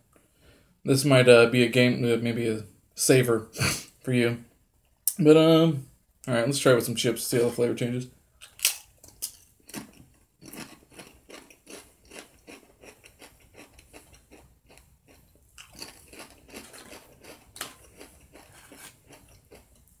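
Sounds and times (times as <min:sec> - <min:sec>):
crunching tortilla chips: 0:09.6 - 0:19.8.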